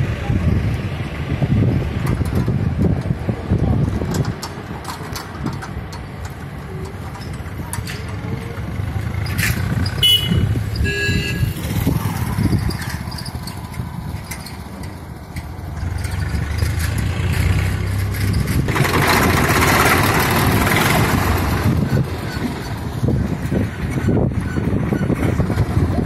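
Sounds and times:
vehicle engines rumbling: 0:00.0 - 0:26.0
vehicle passing close: 0:00.0 - 0:26.0.

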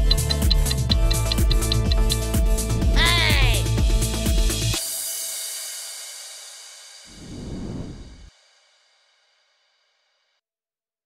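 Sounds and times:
background music: 0:00.0 - 0:07.2
burst of low noise: 0:07.1 - 0:08.3.

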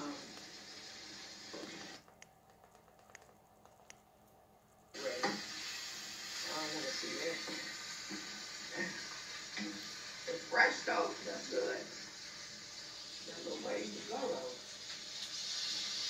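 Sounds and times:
muffled talk from tv: 0:00.0 - 0:00.5, 0:05.0 - 0:14.8
tv soundtrack hiss: 0:00.0 - 0:16.0
faint clicks: 0:02.0 - 0:04.9.

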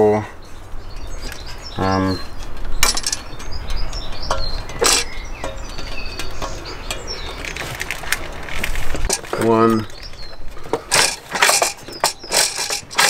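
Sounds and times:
clicks and knocks of handled metal: 0:00.9 - 0:13.0
wiring connectors clicking in: 0:02.4 - 0:13.0.

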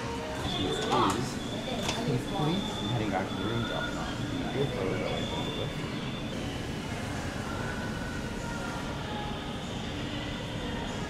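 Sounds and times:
steady rumbling hum: 0:00.2 - 0:11.0.

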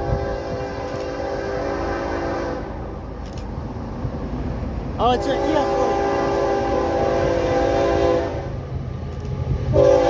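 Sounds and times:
locomotive air horn blast: 0:00.0 - 0:02.8, 0:05.2 - 0:08.6, 0:09.7 - 0:10.0.

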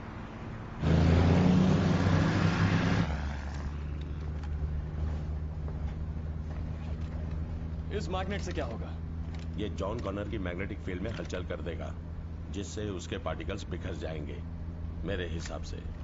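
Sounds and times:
vehicle engine droning: 0:00.0 - 0:16.0.

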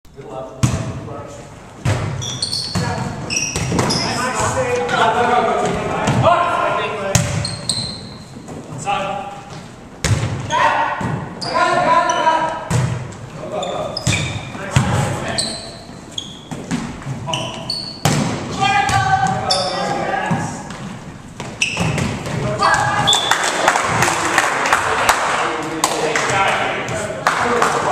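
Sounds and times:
volleyball hits and thuds: 0:00.6 - 0:01.0, 0:01.8 - 0:04.1, 0:07.0 - 0:07.6, 0:09.5 - 0:11.4, 0:12.6 - 0:13.2, 0:16.4 - 0:17.3, 0:17.9 - 0:19.5, 0:20.2 - 0:23.2
sneakers squeaking on wooden floor: 0:01.7 - 0:23.4
volleyball being struck by hands: 0:18.0 - 0:19.4
players shouting: 0:22.4 - 0:25.3.

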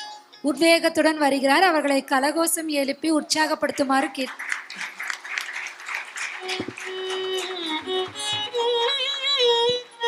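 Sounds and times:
audience clapping: 0:03.6 - 0:09.9.

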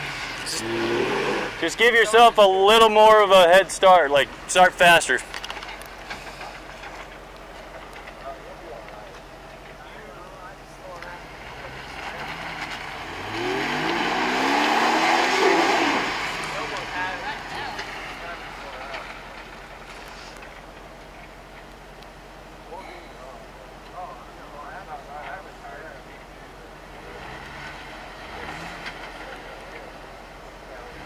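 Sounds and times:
engine revving: 0:00.0 - 0:02.9, 0:11.0 - 0:20.4, 0:26.8 - 0:31.0.

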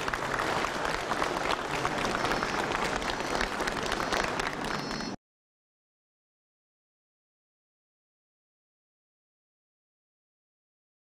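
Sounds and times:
crowd applauding: 0:00.0 - 0:05.2.

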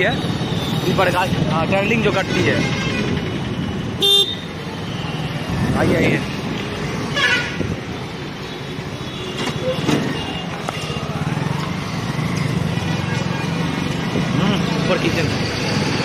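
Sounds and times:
motorbike and scooter engines: 0:00.0 - 0:16.0
vehicle horns tooting: 0:02.0 - 0:04.6
people's voices: 0:09.5 - 0:15.4.

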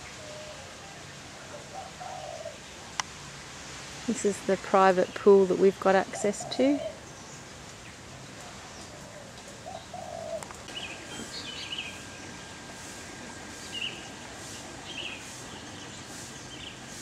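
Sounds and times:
bird cooing: 0:00.0 - 0:02.6, 0:06.1 - 0:07.0, 0:08.7 - 0:16.7.

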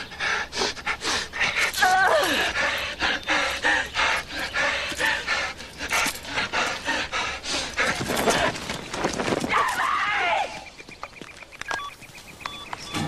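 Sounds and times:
people panting and gasping: 0:00.0 - 0:09.6.

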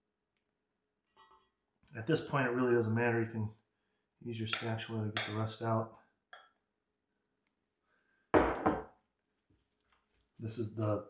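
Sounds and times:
kitchenware knocks: 0:08.4 - 0:08.9.

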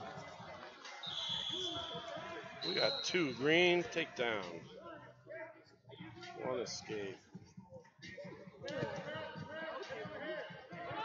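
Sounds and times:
voices in large hall: 0:00.0 - 0:11.0.

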